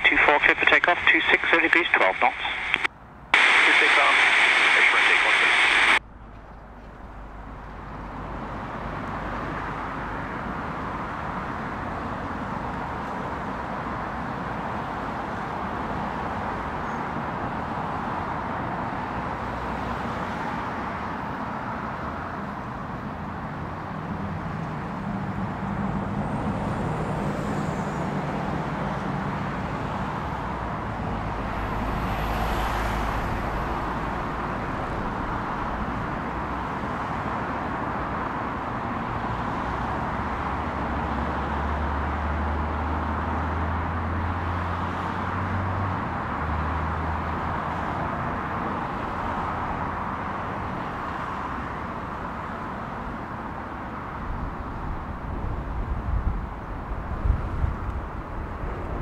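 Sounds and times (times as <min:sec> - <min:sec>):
jet engines roaring at takeoff: 0:00.0 - 0:06.0, 0:07.1 - 0:41.5
road traffic rumble: 0:00.0 - 0:59.0.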